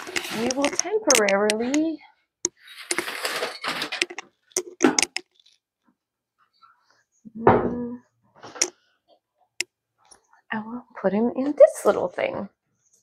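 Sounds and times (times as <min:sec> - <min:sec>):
rustling: 0:00.0 - 0:01.5, 0:02.6 - 0:05.6
plant pots clattering: 0:00.0 - 0:01.9, 0:02.6 - 0:05.5.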